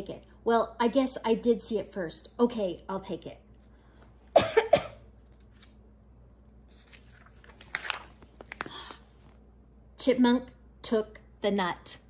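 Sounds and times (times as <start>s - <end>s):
paper page turning: 5.2s - 5.8s, 6.6s - 9.4s.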